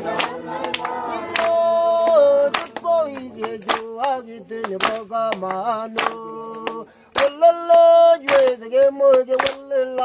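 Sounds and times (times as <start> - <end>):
congregation singing a hymn: 0.0 - 10.0
sharp hand claps: 0.1 - 10.0.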